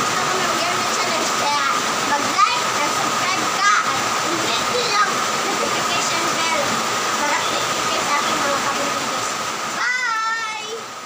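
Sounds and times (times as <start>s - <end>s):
girl talking or laughing: 2.2s - 8.8s.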